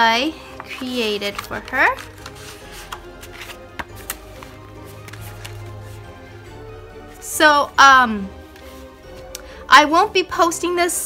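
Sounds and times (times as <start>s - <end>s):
music with held tones: 0.0s - 11.0s
paper envelope taps and rustles: 0.6s - 5.7s.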